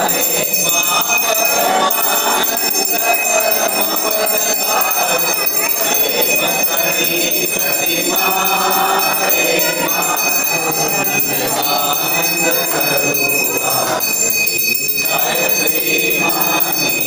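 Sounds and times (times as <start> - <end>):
small hand bell ringing: 0.0 - 17.0.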